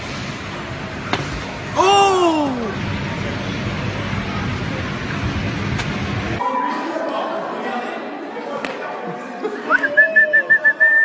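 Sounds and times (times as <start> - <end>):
voices and chatter: 1.8 - 11.0.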